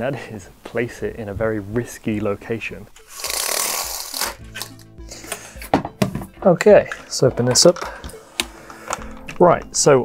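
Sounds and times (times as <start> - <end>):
background music with low notes: 0.0 - 10.0.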